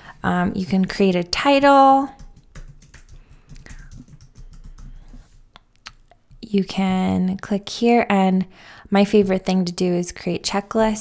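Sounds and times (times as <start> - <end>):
computer keyboard keys clicking: 2.2 - 5.2.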